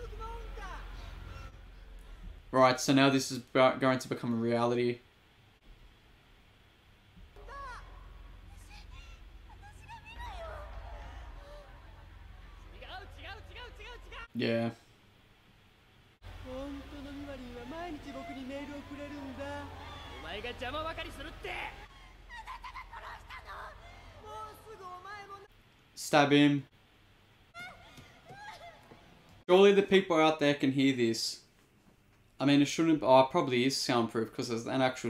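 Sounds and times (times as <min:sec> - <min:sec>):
low rumble: 0:07.1 - 0:14.3
man shouting high-pitched: 0:12.6 - 0:14.3, 0:16.5 - 0:21.9.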